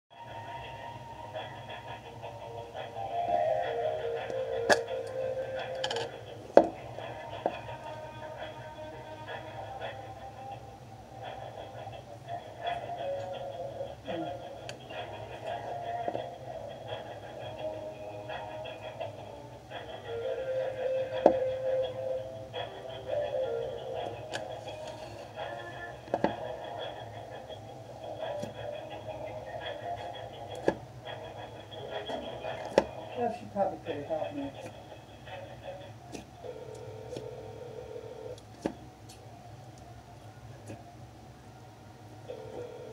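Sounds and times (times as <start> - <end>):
background music with voices: 0.1 - 36.5.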